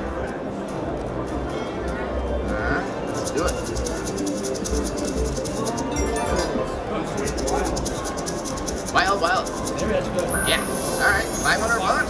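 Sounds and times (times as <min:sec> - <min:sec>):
fast ticking: 0:00.0 - 0:06.1, 0:07.1 - 0:12.0
slot machine reels spinning: 0:00.0 - 0:12.0
voices chattering: 0:00.0 - 0:12.0.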